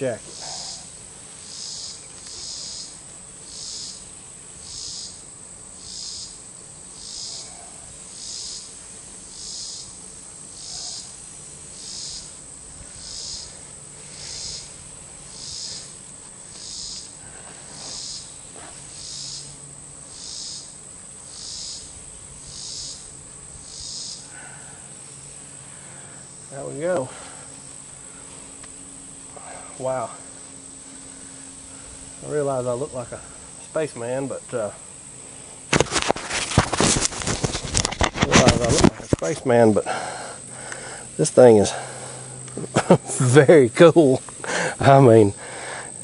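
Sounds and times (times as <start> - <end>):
insects shrilling: 0.0 - 46.0.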